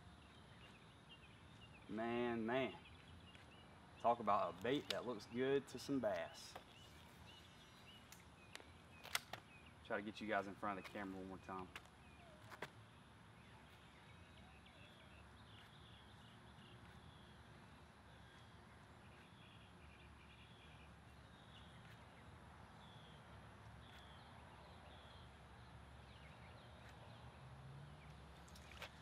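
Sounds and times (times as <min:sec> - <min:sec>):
faint bird chirps: 0:10.6 - 0:27.2.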